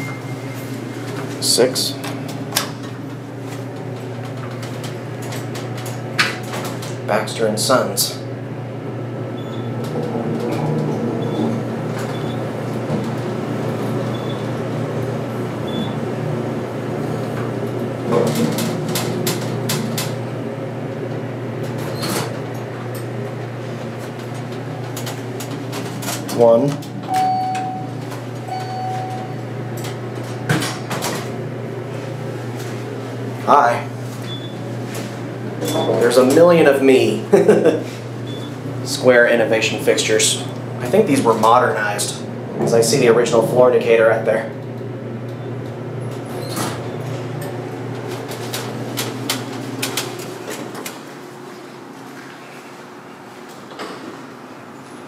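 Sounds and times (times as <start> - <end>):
elevator doors sliding shut: 0.0 - 7.9, 9.0 - 36.8, 37.8 - 51.8
elevator starting upward: 0.0 - 55.0
steady low hum: 0.0 - 55.0.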